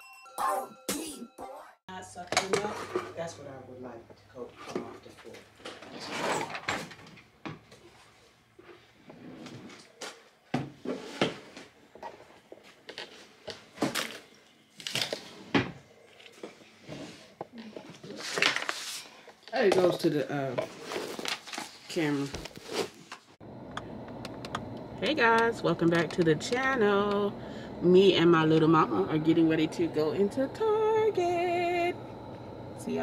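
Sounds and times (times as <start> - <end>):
low voices: 23.6 - 33.0.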